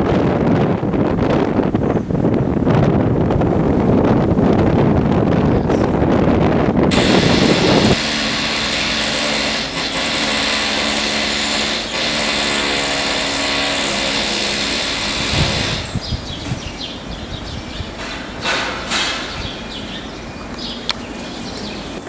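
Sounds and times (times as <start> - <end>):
wind buffeting microphone: 0.0 - 22.0
small motor hissing: 6.9 - 13.4.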